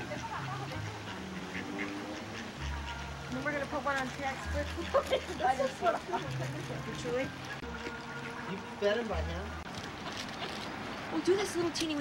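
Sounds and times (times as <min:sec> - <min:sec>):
ducks quacking: 0:00.0 - 0:12.0.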